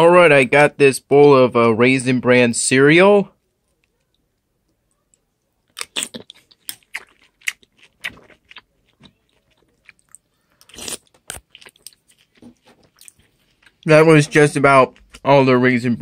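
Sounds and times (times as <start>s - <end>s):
chewing crunchy cereal: 4.9s - 13.9s.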